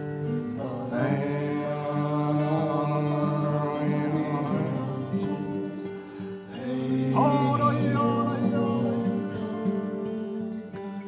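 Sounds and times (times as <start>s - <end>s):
man singing chant-like: 0.0s - 10.4s
fingerpicked acoustic guitar: 0.0s - 11.0s.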